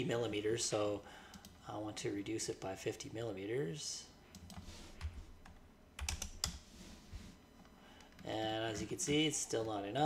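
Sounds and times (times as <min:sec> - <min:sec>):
computer keyboard keystrokes: 0:04.4 - 0:06.6.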